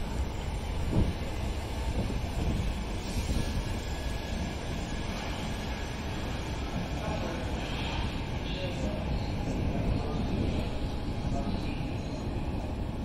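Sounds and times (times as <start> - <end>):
electric train passing: 0.0 - 13.0.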